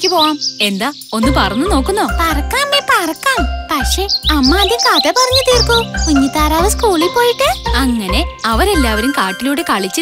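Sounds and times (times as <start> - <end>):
bouncy cartoon music: 1.2 - 10.0.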